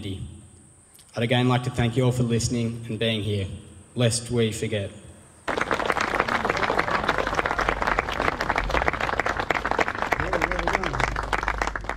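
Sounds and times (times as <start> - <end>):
crowd clapping: 5.5 - 11.9.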